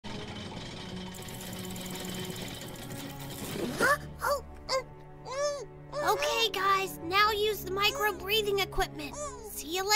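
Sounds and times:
rapid whirring rattle: 0:00.0 - 0:03.8
background music: 0:00.0 - 0:09.9.

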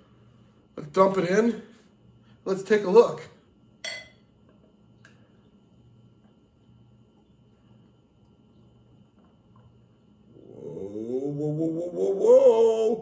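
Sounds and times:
low on-off hum: 0:00.0 - 0:13.0.

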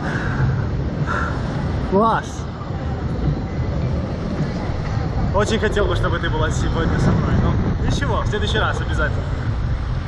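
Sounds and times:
wind rushing over microphone: 0:00.0 - 0:10.0.

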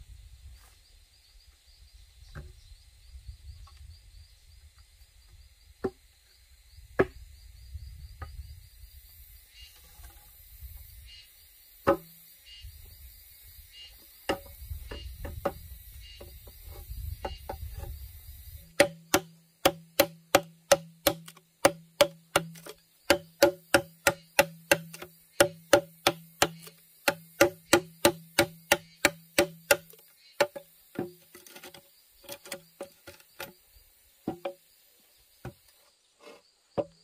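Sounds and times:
insects chirping: 0:00.0 - 0:37.0
bamboo poles knocking: 0:07.0 - 0:07.2, 0:11.8 - 0:12.1, 0:14.2 - 0:17.9, 0:18.7 - 0:33.6, 0:34.2 - 0:34.6, 0:36.2 - 0:37.0
machete chopping bamboo: 0:11.9 - 0:12.1, 0:14.3 - 0:14.6, 0:18.7 - 0:33.5.

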